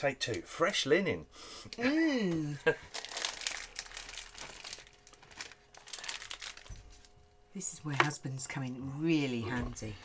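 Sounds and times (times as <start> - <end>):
plastic sachet crinkling: 2.8 - 7.3
pellets crackling into plastic shell: 2.9 - 7.1.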